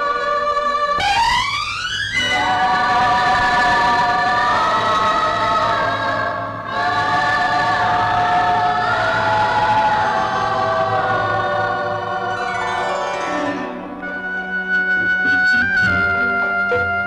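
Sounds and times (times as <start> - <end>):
choir singing long held notes: 0.0 - 15.3.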